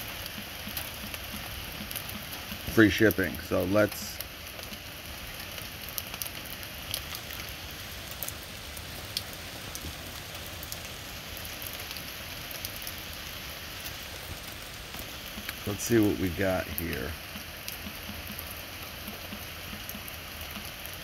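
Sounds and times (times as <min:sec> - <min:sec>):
raindrops ticking: 0:00.0 - 0:21.0
steady rain hissing: 0:00.0 - 0:21.0.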